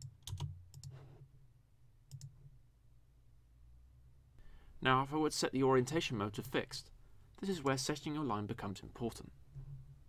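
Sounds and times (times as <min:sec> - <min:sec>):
faint low hum: 0:00.0 - 0:10.0
computer mouse clicks: 0:02.1 - 0:02.4.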